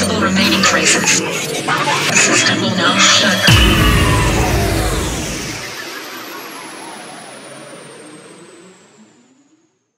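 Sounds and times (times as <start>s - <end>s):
high tone gliding downward: 3.5s - 6.1s.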